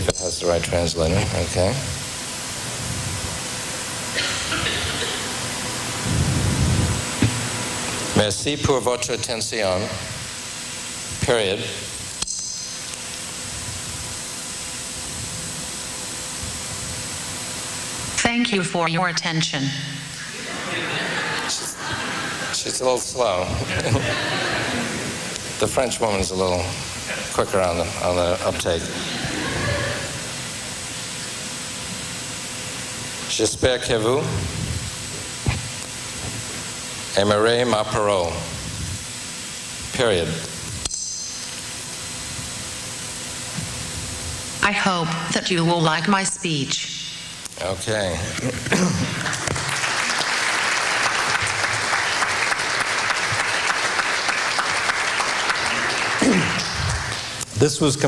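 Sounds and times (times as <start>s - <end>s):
faint high whine: 0.0s - 58.0s
steady loud hiss: 0.0s - 58.0s.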